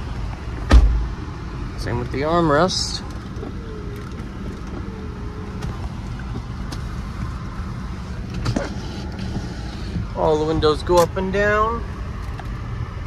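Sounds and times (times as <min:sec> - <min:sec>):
car engine idling: 0:00.0 - 0:13.0.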